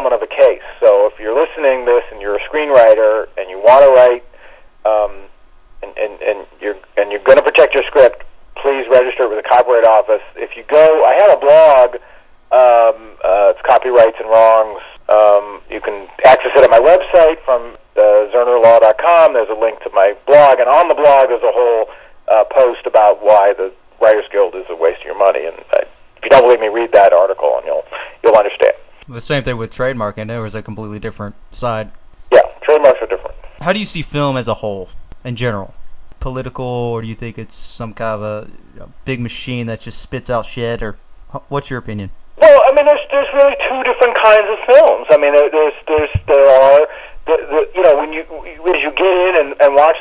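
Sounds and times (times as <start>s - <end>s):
person talking over phone line: 0.0s - 4.3s, 4.9s - 50.0s.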